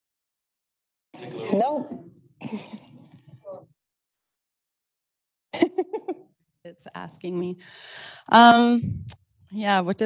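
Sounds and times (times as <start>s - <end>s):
person clearing throat: 1.2s - 3.0s.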